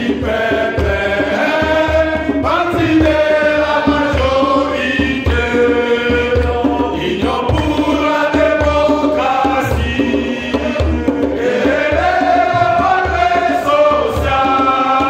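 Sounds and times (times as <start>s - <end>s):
crowd singing an anthem: 0.0s - 15.0s.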